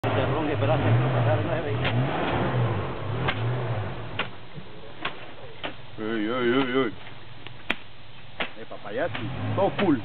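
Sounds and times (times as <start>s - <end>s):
truck engine revving in mud: 0.0s - 4.4s, 9.1s - 10.0s.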